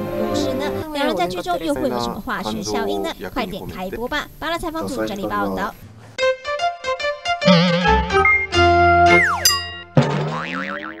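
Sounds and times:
cartoon boing glide: 7.4 - 11.0.

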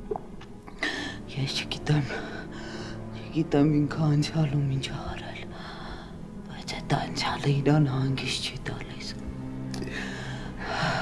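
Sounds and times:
faint steady background tone: 0.0 - 11.0
soft whispered speech: 6.5 - 9.2.

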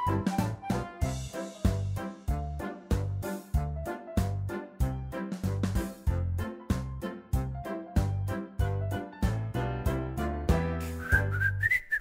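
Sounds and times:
whistled tune: 0.0 - 1.4, 10.8 - 12.0
bouncy background music: 0.0 - 11.7.

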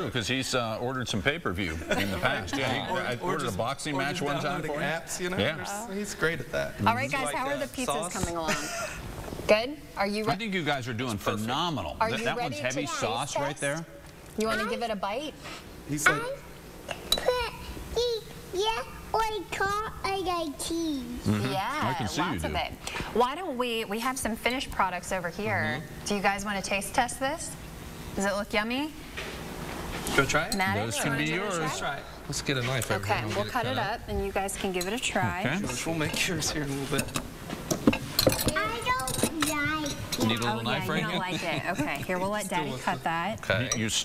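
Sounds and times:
child's high voice: 17.2 - 21.2, 38.5 - 40.0
metal spoon clinking a dish: 34.8 - 35.0.

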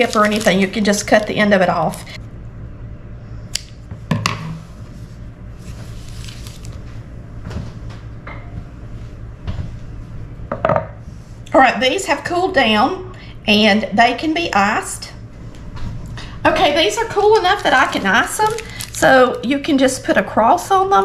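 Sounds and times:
low hum: 0.0 - 20.9.

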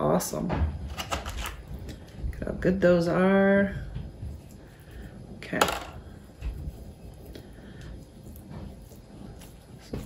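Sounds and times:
scraping and rustling coir: 6.1 - 10.0.

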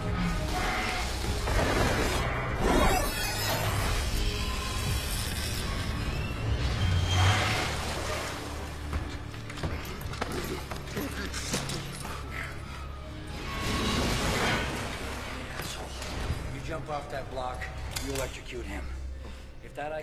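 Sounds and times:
low droning film score: 0.0 - 20.0.

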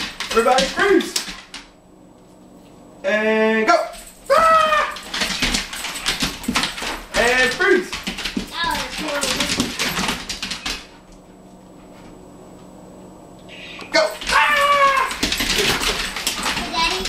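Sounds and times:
dogs high-pitched cries: 3.7 - 5.4, 14.0 - 16.1
dog claws clicking on tile: 4.3 - 11.0.

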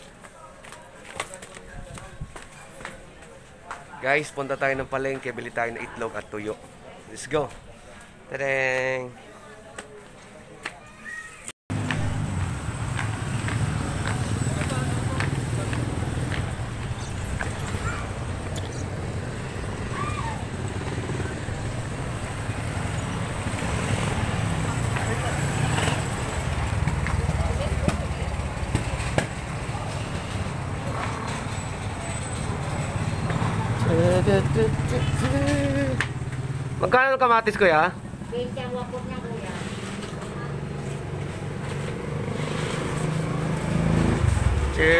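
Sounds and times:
motorcycles: 11.7 - 44.9
traffic rumble: 11.7 - 44.9
people talking: 13.9 - 19.0, 27.0 - 31.0, 33.3 - 36.0.

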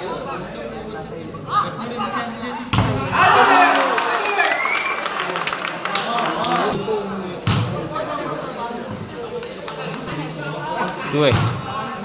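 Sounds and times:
spectators shouting: 3.1 - 5.3.

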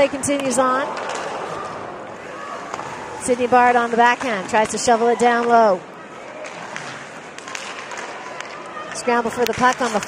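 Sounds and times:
low crowd murmur: 0.0 - 3.6, 5.0 - 9.3
stick and puck clacks: 0.2 - 1.8, 2.6 - 3.0, 4.0 - 5.7, 6.4 - 10.0
skates scraping on ice: 6.4 - 10.0.

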